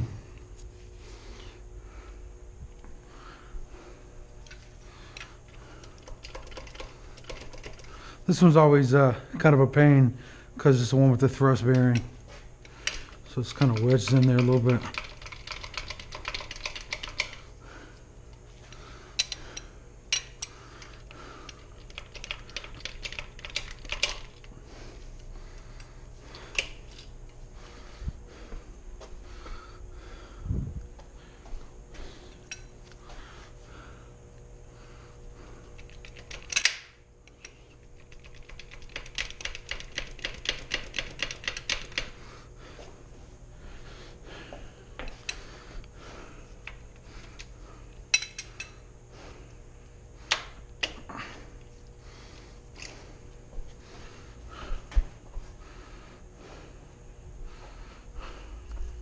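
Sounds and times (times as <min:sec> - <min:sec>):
hand ratchet clicking: 0:04.4 - 0:08.0, 0:11.7 - 0:17.4, 0:19.2 - 0:24.4, 0:35.8 - 0:42.2
metal tools clinking: 0:48.1 - 0:48.8.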